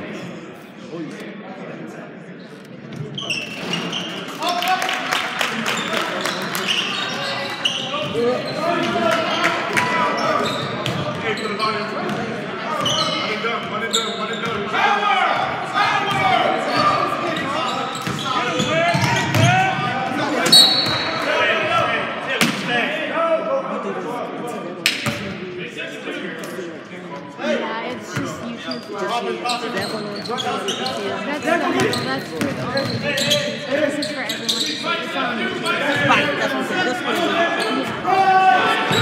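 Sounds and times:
people shouting in a hall: 0:35.8 - 0:39.0.

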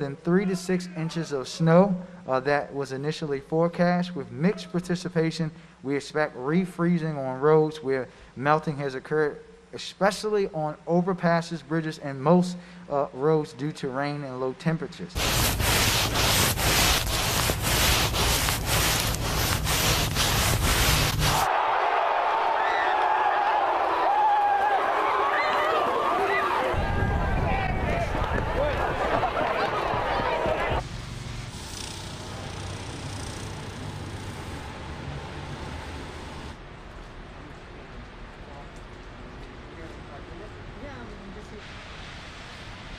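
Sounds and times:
arms swishing through snow: 0:15.2 - 0:21.5
crowd noise: 0:21.2 - 0:30.8
street noise: 0:22.6 - 0:42.9.

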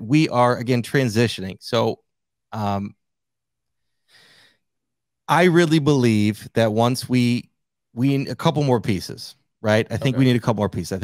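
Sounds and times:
faint breath into microphone: 0:03.8 - 0:04.7.

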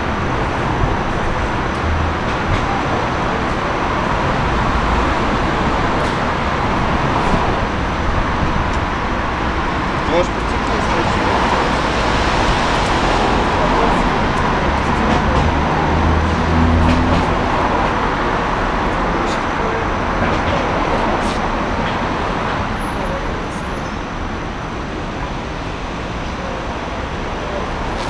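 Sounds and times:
vehicle engine: 0:00.0 - 0:23.8
street traffic noise: 0:00.0 - 0:28.0.

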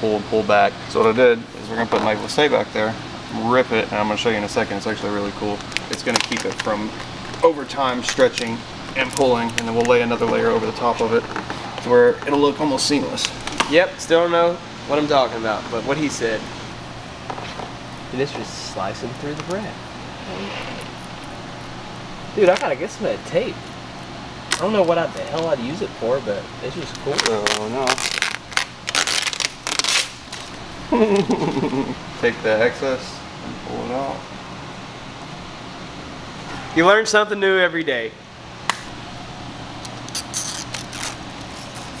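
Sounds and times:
steady low hum: 0:00.0 - 0:42.0
tape filament cutting film hiss: 0:05.5 - 0:11.1, 0:39.8 - 0:42.0.

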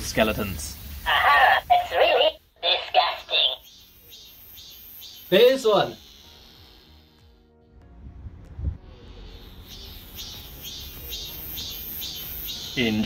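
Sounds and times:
cicada singing: 0:00.0 - 0:07.4, 0:08.9 - 0:13.0.

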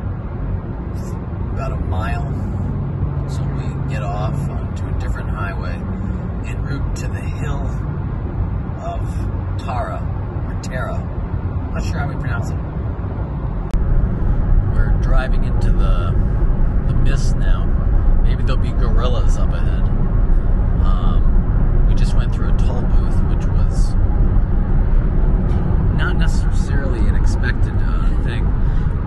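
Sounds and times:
car road and engine rumble: 0:00.0 - 0:29.0.

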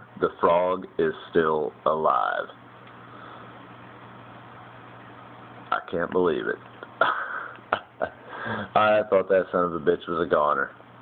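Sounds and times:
aquarium pump humming: 0:00.0 - 0:11.0.

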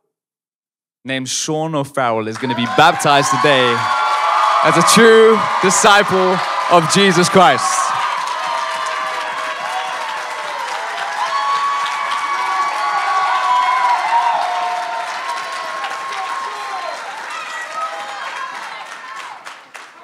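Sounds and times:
voices calling out and whooping: 0:02.4 - 0:19.4
congregation applauding: 0:02.4 - 0:20.0.

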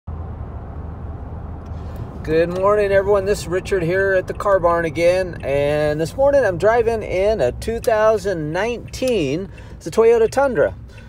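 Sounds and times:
engine and road noise in cab: 0:00.1 - 0:11.0.

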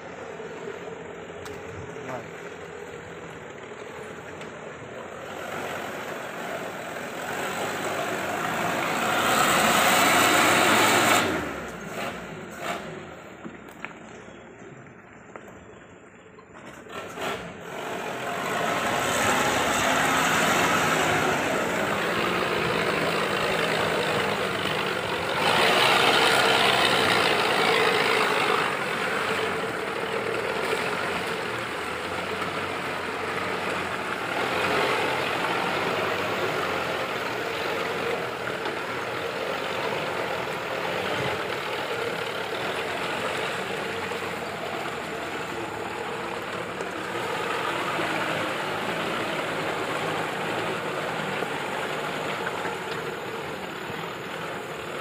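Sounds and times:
off-road vehicle engine running: 0:00.0 - 0:55.0.

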